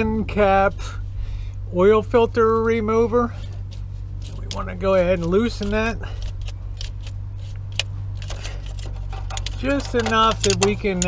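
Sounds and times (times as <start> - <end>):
steady low hum: 0.0 - 11.0
oil filter wrench clicking: 7.7 - 11.0.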